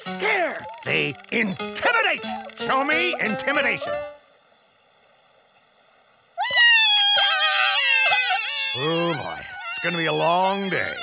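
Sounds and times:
cartoon bunnies shrieking: 0:06.4 - 0:11.0.

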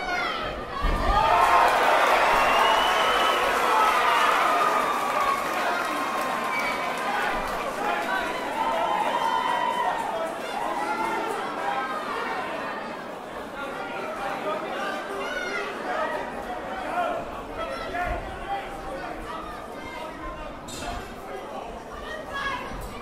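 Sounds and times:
crowd shouting and cheering: 0:00.0 - 0:13.2.

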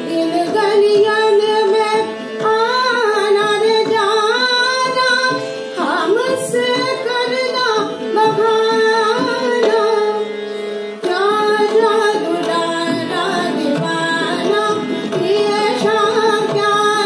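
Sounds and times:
harmonium: 0:00.0 - 0:17.0
tabla: 0:00.0 - 0:17.0
woman singing devotional song: 0:00.0 - 0:17.0.

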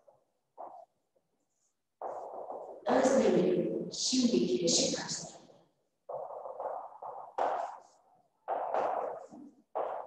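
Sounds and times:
marker scratching on whiteboard: 0:00.0 - 0:03.3, 0:06.0 - 0:10.0.

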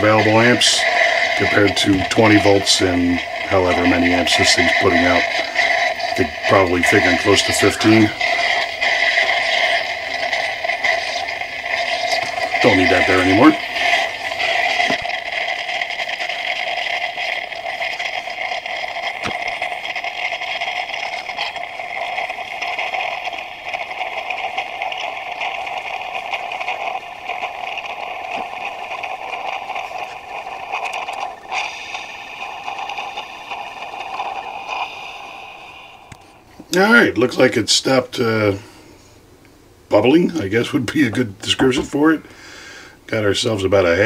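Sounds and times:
coffee maker bubbling: 0:00.0 - 0:39.0, 0:39.9 - 0:44.0.

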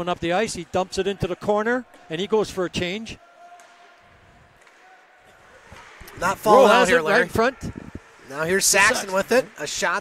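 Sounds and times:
commentary: 0:06.2 - 0:07.6, 0:08.3 - 0:10.0.

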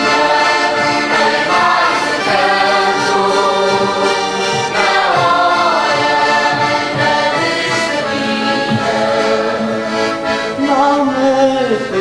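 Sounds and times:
accordion: 0:00.0 - 0:12.0
voices singing together: 0:00.0 - 0:12.0.

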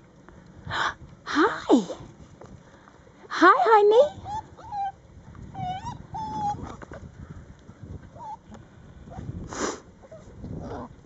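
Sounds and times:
puppy whimpering: 0:04.0 - 0:07.0, 0:08.1 - 0:08.5.

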